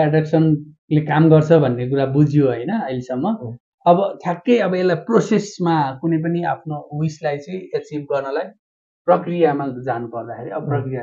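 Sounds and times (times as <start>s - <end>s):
man speaking: 0.0s - 8.5s, 9.1s - 11.0s.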